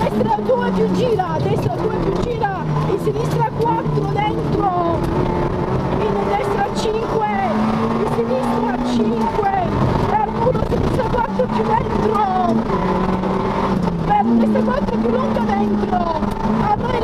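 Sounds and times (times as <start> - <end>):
person talking: 0.0 - 5.0, 6.0 - 12.7, 14.1 - 17.0
rally car engine revving: 0.0 - 17.0
car clicks and knocks: 1.2 - 8.1.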